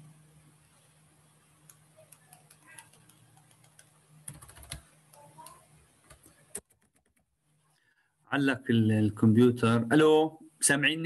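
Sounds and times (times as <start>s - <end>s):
computer keys clicking: 1.6s - 7.2s.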